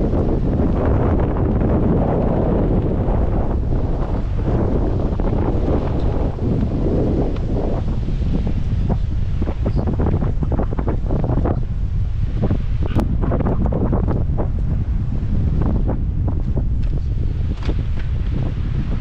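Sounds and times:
surf breaking on shore: 0.0 - 19.0
wind buffeting microphone: 0.0 - 19.0.

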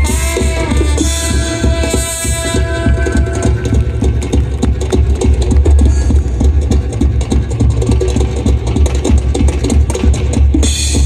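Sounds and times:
quick dense percussion hits: 0.0 - 11.0
throbbing low bass: 0.0 - 11.0.

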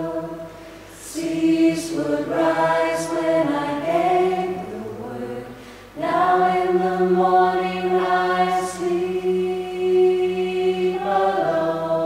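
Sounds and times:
a cappella choir singing: 0.0 - 12.0.

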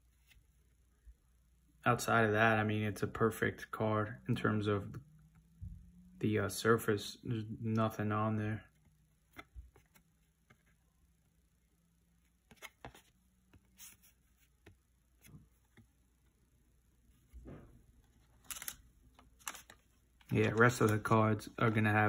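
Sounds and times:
fingers handling cardboard card: 8.8 - 10.8, 12.3 - 15.9.

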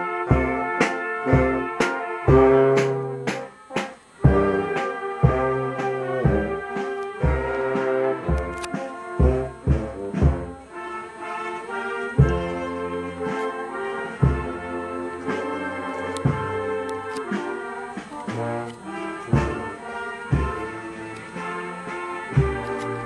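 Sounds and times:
trombones and trumpets: 0.0 - 23.0
wind band playing a march: 0.0 - 23.0
low drum beat: 0.3 - 10.7, 12.2 - 13.3, 14.2 - 23.0.

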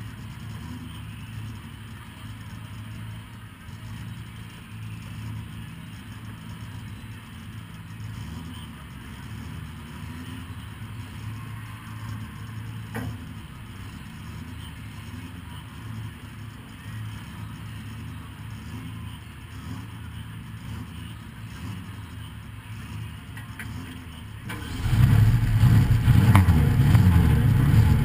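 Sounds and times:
car engine idling: 0.0 - 28.0.

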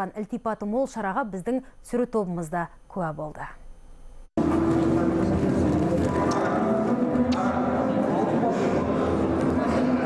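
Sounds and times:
dense hall background noise: 4.4 - 10.0
music playing: 4.4 - 10.0.

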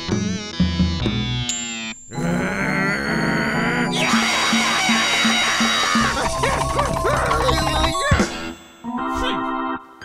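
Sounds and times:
cartoon background music: 0.0 - 10.0
cartoon character vocal sounds: 2.1 - 8.2.

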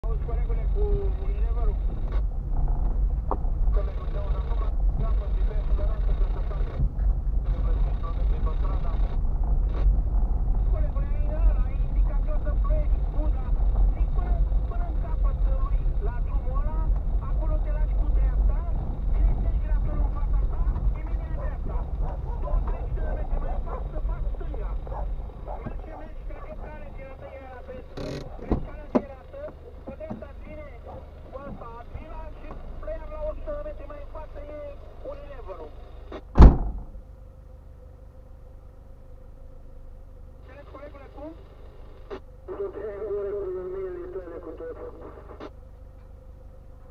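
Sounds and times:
car road noise rumble: 0.0 - 37.9
sharp knock: 36.4 - 36.9.

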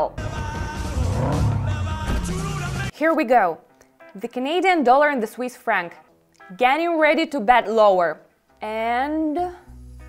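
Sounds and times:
music: 0.0 - 10.0
tyres skidding: 0.4 - 2.9.

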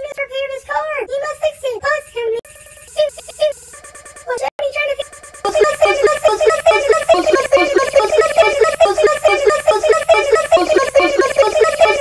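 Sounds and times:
chopped voice sample: 4.3 - 12.0.

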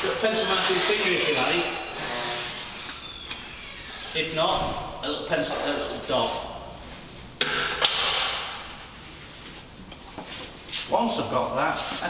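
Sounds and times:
faint scuffing movement: 8.7 - 11.0.

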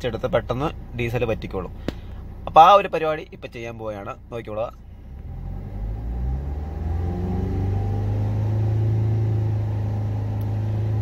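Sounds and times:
diesel engine revving: 4.8 - 11.0.

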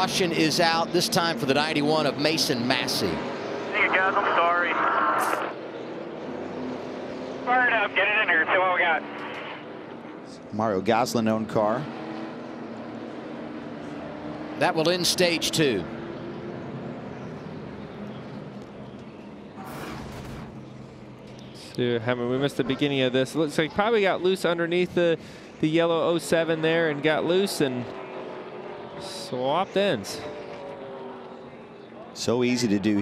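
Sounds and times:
race car engines droning: 0.0 - 33.0.

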